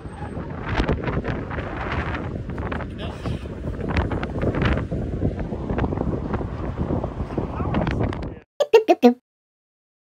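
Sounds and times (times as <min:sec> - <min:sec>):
gusty wind buffeting microphone: 0:00.0 - 0:08.4.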